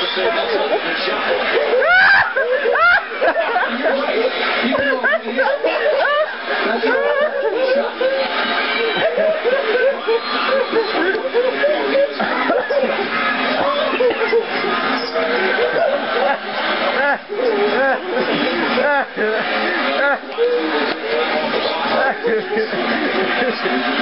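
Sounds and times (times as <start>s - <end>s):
snickering and laughter: 0.0s - 24.0s
voices talking over each other: 0.0s - 24.0s.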